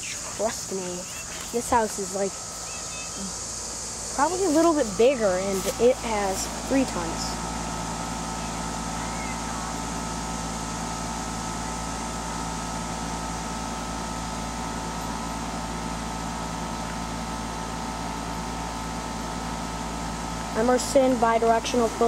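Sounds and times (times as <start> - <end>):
compressor hum: 0.0 - 22.0
condenser fan air rush: 0.0 - 22.0.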